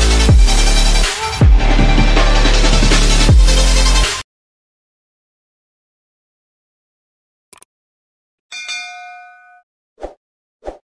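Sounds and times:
bell-like chime: 0:08.5 - 0:09.6.

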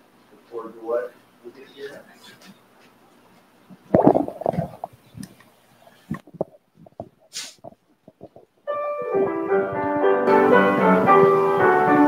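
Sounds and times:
microphone handling thumps: 0:03.7 - 0:05.4, 0:06.0 - 0:08.5.

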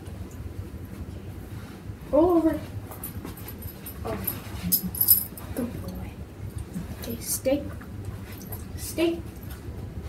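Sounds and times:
chain collar jingling: 0:03.4 - 0:05.5.

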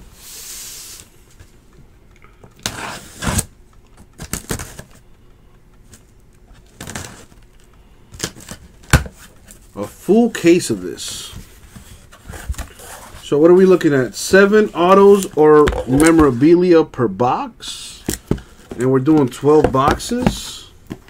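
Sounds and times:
tape hiss: 0:00.0 - 0:21.0
cardboard scraping and rustling: 0:11.0 - 0:13.4.

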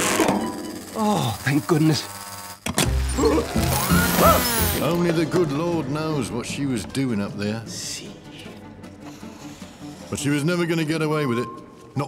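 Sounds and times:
film soundtrack music: 0:02.8 - 0:12.0
vocal cry: 0:03.1 - 0:04.9
person laughing: 0:03.2 - 0:04.7.

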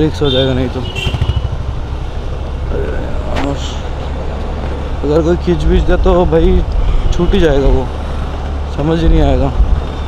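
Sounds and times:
wind and road noise: 0:00.0 - 0:10.0
motor scooter engine running: 0:00.9 - 0:02.0.

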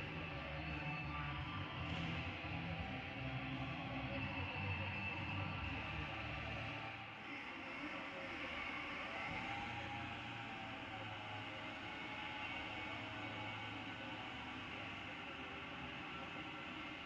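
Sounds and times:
ice rink hum and hiss: 0:05.3 - 0:17.0.

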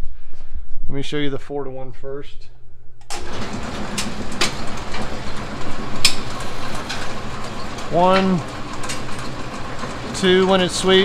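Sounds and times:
pinsetter mechanical clatter: 0:03.1 - 0:11.0.

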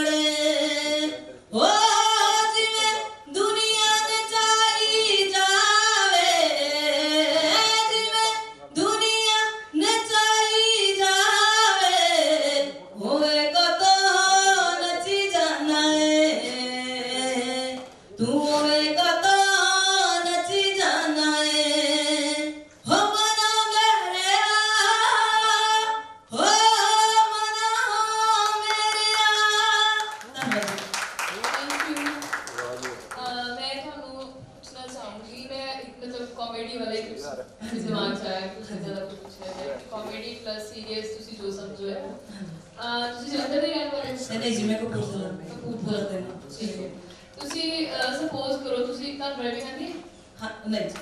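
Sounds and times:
woman singing into a microphone: 0:00.0 - 0:30.6.

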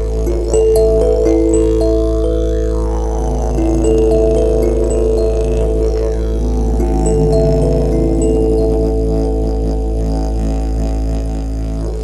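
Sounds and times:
held instrumental notes: 0:00.0 - 0:11.2
didgeridoo drone: 0:00.0 - 0:12.0.

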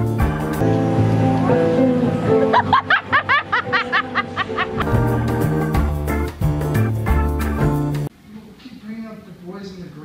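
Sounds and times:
background music: 0:00.0 - 0:08.1
person giggling: 0:02.4 - 0:04.8.

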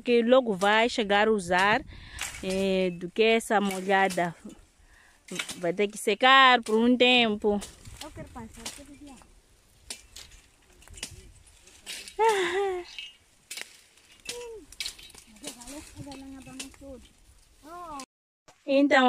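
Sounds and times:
dry sticks snapping: 0:01.6 - 0:04.6, 0:05.3 - 0:06.0, 0:06.6 - 0:17.5.

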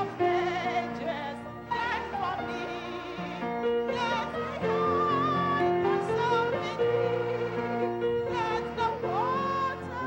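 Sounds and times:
instrumental accompaniment: 0:00.0 - 0:10.0
woman singing a hymn: 0:00.0 - 0:10.0.

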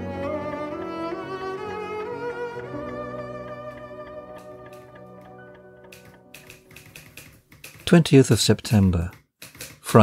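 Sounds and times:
guitar tune: 0:00.0 - 0:06.5
keyboard typing clicks: 0:03.7 - 0:09.8
person speaking: 0:07.8 - 0:09.2.

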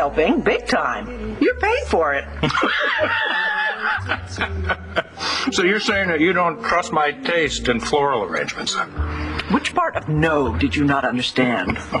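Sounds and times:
people chuckling: 0:02.4 - 0:05.8.

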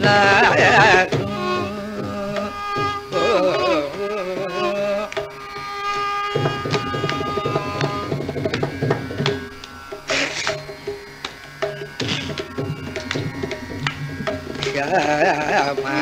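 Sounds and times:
mridangam drumming: 0:00.0 - 0:16.0.

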